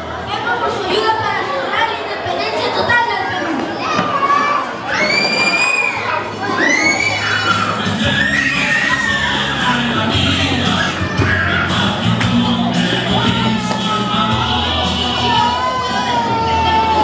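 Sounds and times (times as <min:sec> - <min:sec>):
crowd noise: 0:00.0 - 0:17.0
children shouting together: 0:00.5 - 0:12.2, 0:12.8 - 0:17.0
music: 0:06.2 - 0:17.0.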